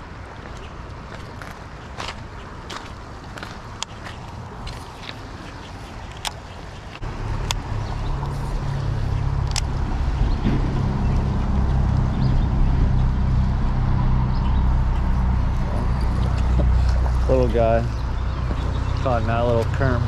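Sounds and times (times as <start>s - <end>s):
wind buffeting microphone: 7.0s - 20.0s.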